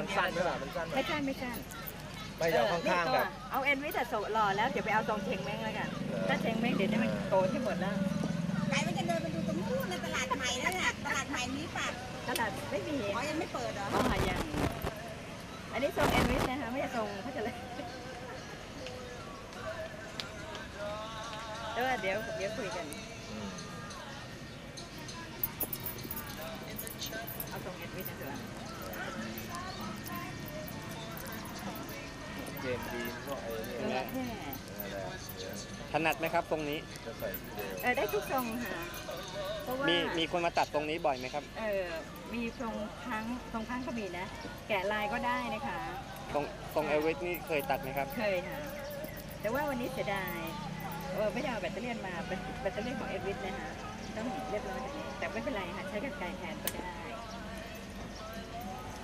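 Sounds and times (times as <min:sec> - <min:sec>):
people talking: 0:00.0 - 0:15.0, 0:15.8 - 0:17.9, 0:25.6 - 0:40.6
faint voices: 0:00.0 - 0:59.0.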